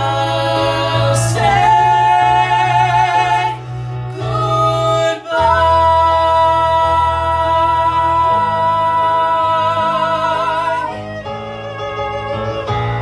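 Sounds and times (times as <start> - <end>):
woman and man singing duet: 0.0 - 11.1
instrumental accompaniment: 0.0 - 13.0.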